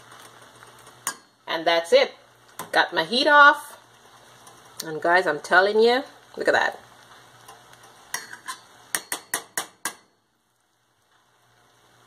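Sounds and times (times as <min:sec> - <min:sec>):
spoon scraping a metal pot: 0:07.5 - 0:10.0.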